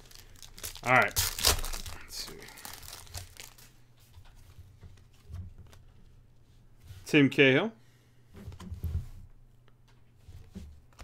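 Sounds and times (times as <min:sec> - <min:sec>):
cards rustling: 0:00.0 - 0:03.7
foil wrapper crinkling: 0:00.0 - 0:03.7.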